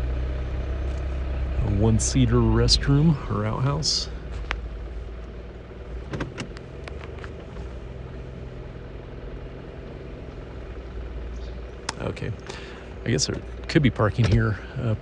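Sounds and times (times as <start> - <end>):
car engine and tyre rumble: 0.0 - 15.0.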